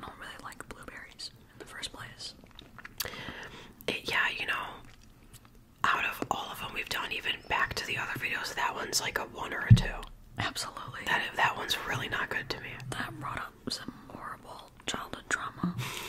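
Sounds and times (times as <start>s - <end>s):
mouth clicks: 2.5s - 3.2s
people whispering: 10.5s - 15.8s.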